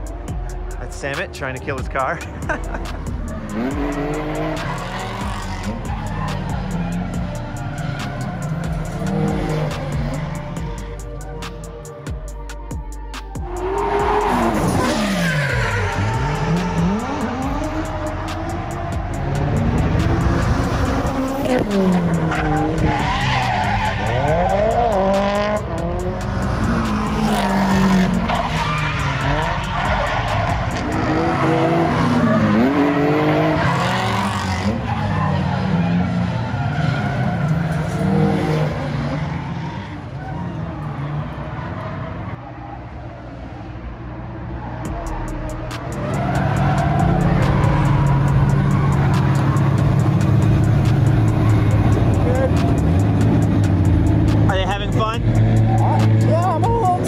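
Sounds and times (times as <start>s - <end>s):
car engines revving: 0.0s - 57.0s
tyre squeal: 13.4s - 25.5s, 26.8s - 42.6s
loud steady engine note: 44.9s - 57.0s.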